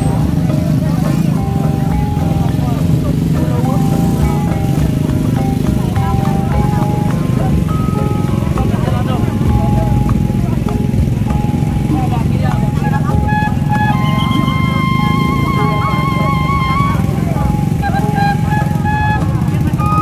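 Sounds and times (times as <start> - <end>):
crowd voices: 0.0 - 20.0
loud music over horn loudspeaker: 13.0 - 20.0.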